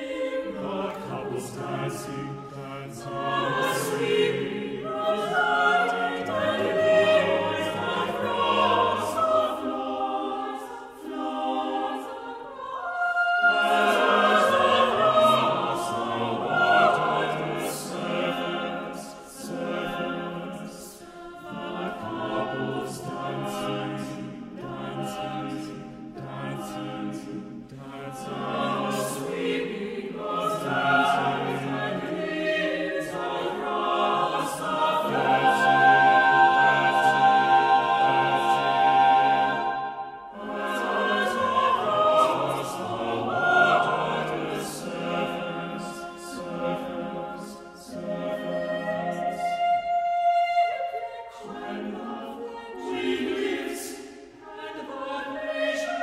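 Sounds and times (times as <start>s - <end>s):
choir singing sustained chords: 0.0s - 56.0s.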